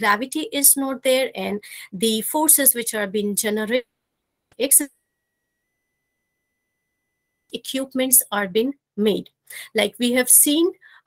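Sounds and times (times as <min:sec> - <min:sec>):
faint high-pitched tone: 0:04.5 - 0:09.2.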